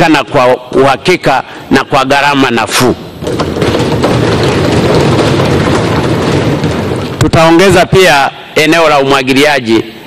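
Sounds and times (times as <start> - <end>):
people drumming on desks: 3.0 - 7.8.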